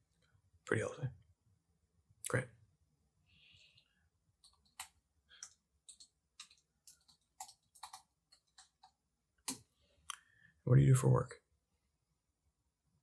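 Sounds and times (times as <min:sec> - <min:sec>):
soft irregular clicks: 0:03.7 - 0:10.3.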